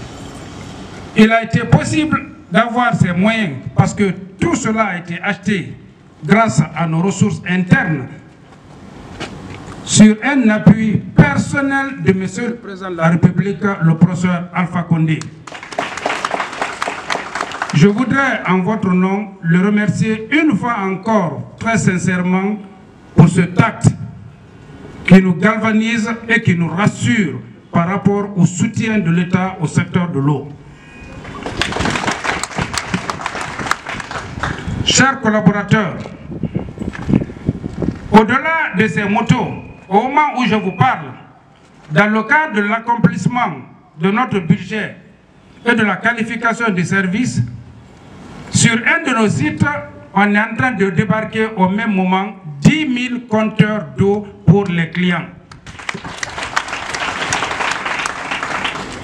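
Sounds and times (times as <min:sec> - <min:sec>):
audience applauding: 0:15.4 - 0:18.1, 0:31.2 - 0:34.7, 0:55.6 - 0:59.0.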